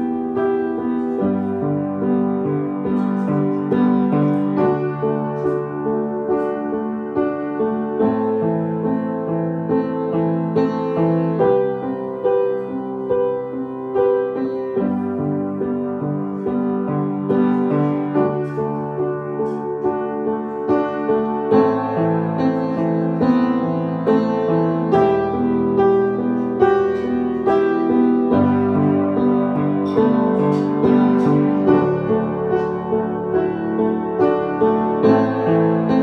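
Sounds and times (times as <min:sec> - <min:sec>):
grand piano chords and melody: 0:00.0 - 0:36.0.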